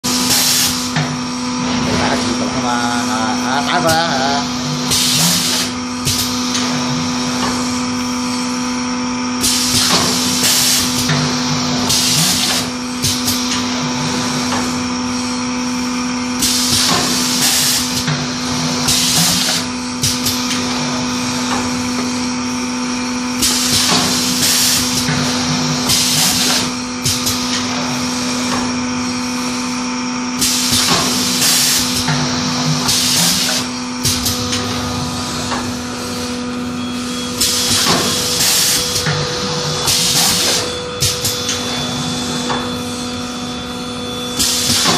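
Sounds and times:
machine electrical hum: 0.0 - 44.9.

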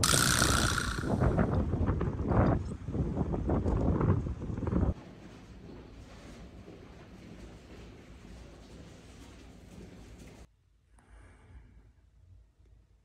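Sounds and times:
wind buffeting microphone: 0.0 - 5.0.

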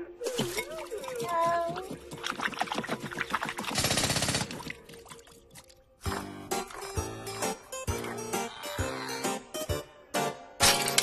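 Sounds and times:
fast cartoon rattle: 2.3 - 4.7.

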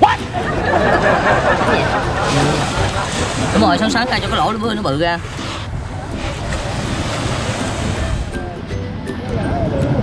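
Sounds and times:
sea surf: 0.0 - 10.0
wind buffeting microphone: 0.3 - 10.0.

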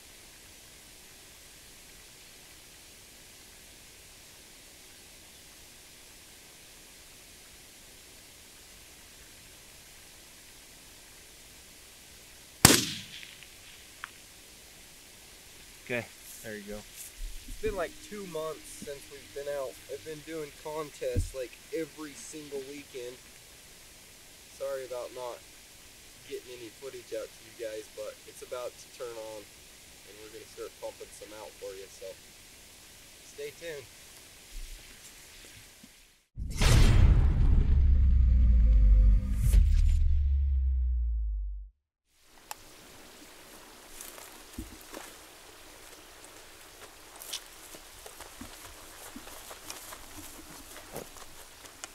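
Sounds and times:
steady faint hiss: 0.0 - 36.3, 42.1 - 51.9
suppressed rifle shot: 12.6 - 13.8
short low thump: 21.2 - 21.4
faint click: 42.4 - 42.6.

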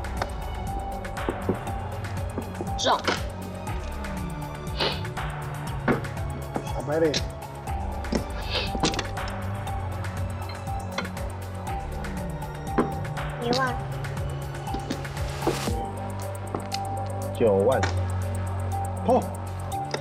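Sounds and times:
background music: 0.0 - 20.0.

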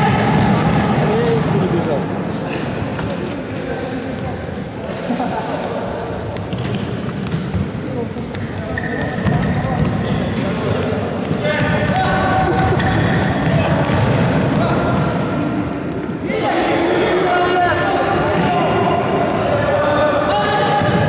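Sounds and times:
players shouting in sports hall: 11.4 - 21.0.

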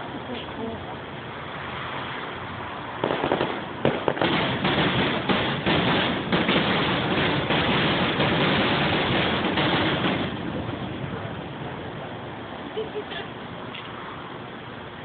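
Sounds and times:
fireworks bursting: 3.0 - 12.6.

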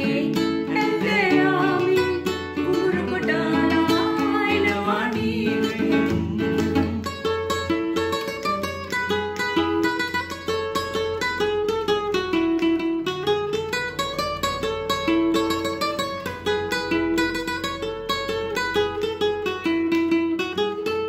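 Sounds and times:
solo classical acoustic guitar: 0.0 - 21.0.

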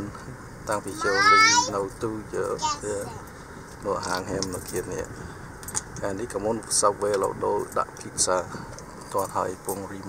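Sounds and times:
people talking: 0.0 - 3.2, 3.8 - 5.1, 6.0 - 10.0
road and engine noise: 0.0 - 10.0.

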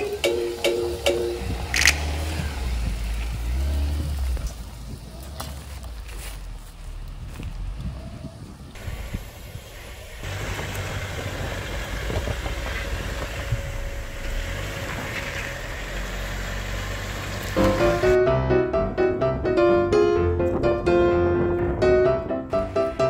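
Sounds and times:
piano music: 0.0 - 1.7, 17.6 - 23.0
car engine low hum: 0.0 - 18.2.

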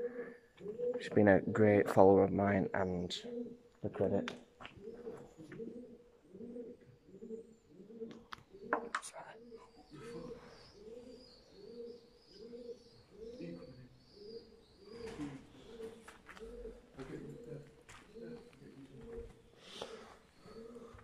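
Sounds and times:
pigeons cooing: 0.0 - 21.0.

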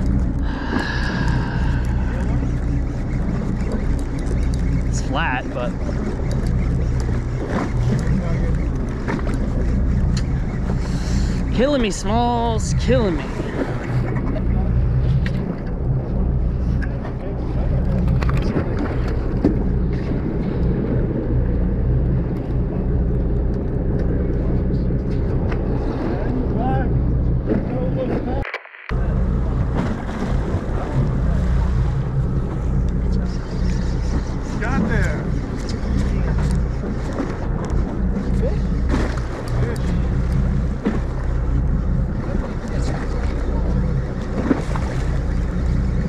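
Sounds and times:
boat engine idling: 0.0 - 46.0.

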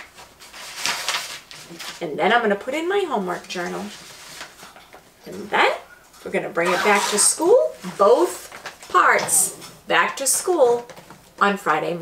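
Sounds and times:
paper rustling in plastic bag: 0.0 - 2.1.

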